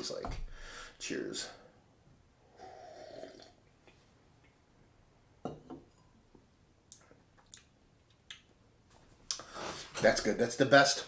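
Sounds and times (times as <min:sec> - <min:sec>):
wet mouth clicks and smacks: 0:06.9 - 0:08.6.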